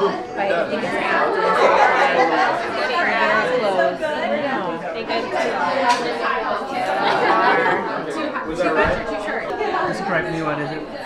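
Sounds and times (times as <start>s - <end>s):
group of people chattering: 0.0s - 11.0s.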